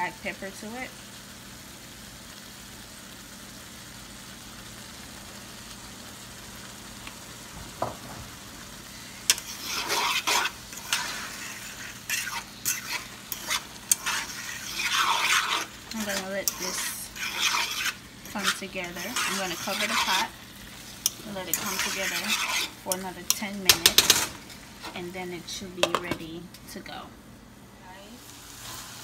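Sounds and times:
food frying hiss: 0:00.0 - 0:29.0
utensil scraping pan: 0:09.2 - 0:25.2.

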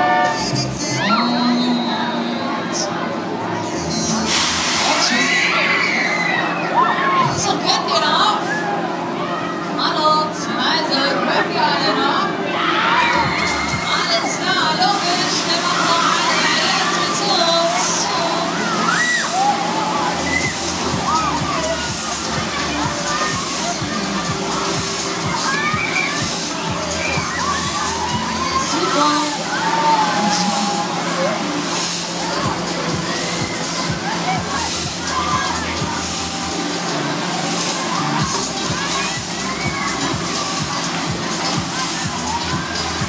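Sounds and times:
voices and shouts: 0:04.9 - 0:43.0
low hum of running ride: 0:05.0 - 0:43.0
riders shouting and screaming: 0:12.5 - 0:14.8, 0:17.4 - 0:31.6.

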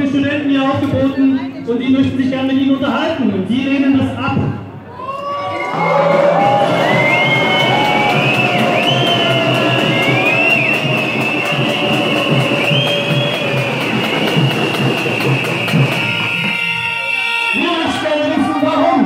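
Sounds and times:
crowd noise: 0:00.0 - 0:19.0
rhythmic low pulse: 0:06.2 - 0:16.6
whistles gliding up and down: 0:06.6 - 0:18.1.

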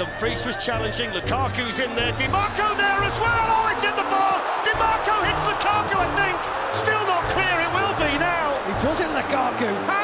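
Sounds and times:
excited commentator's voice: 0:00.0 - 0:10.0
music playing: 0:00.0 - 0:10.0
stadium crowd noise: 0:01.5 - 0:10.0.

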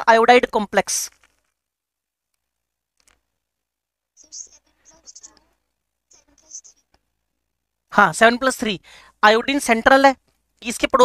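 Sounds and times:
faint voice muttering: 0:04.2 - 0:06.9.

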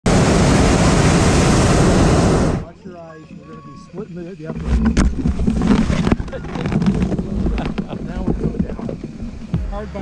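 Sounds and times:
propane burner roaring: 0:00.0 - 0:02.7.

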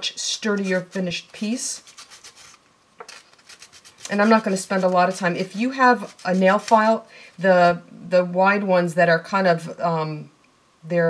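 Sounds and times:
sandpaper scratching: 0:00.5 - 0:07.0.

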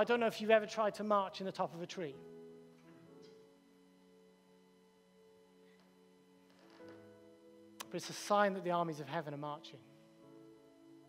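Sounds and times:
faint soft held chords: 0:00.0 - 0:11.0.

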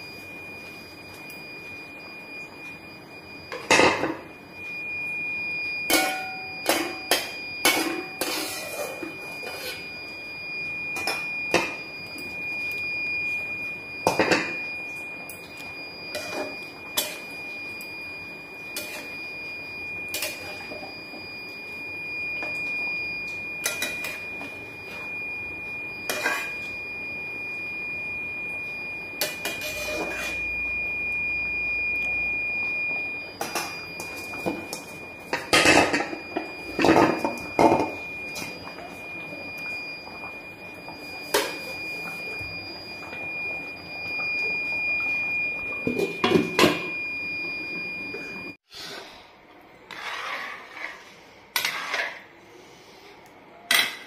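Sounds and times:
steady high-pitched tone: 0:00.0 - 0:48.6
curry bubbling in a metal pot: 0:00.1 - 0:49.2.

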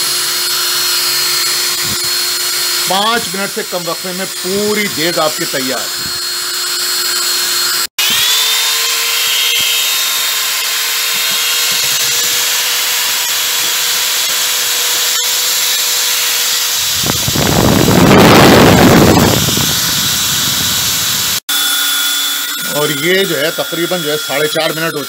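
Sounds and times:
electric drill whining: 0:00.0 - 0:25.0
loud rough noise: 0:08.0 - 0:21.4.

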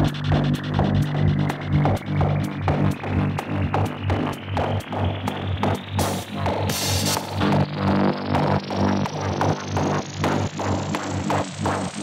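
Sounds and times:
progressive techno music: 0:00.0 - 0:12.0
pulsing bassline and kick: 0:00.0 - 0:12.0
rising synth sweep: 0:00.0 - 0:12.0.

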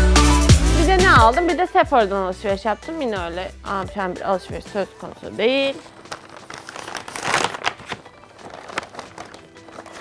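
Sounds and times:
paper bag crinkling: 0:05.0 - 0:10.0.

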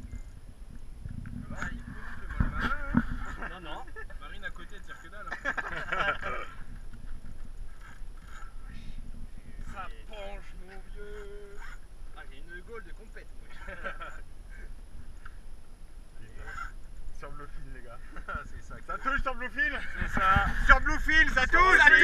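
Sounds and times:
low steady rumble: 0:00.0 - 0:22.0
men calling out and talking: 0:01.4 - 0:06.9, 0:08.3 - 0:15.4, 0:16.0 - 0:22.0.

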